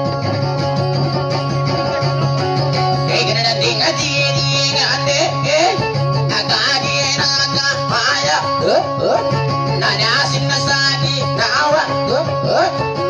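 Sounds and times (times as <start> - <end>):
guitar plucked note runs: 0.0 - 13.0.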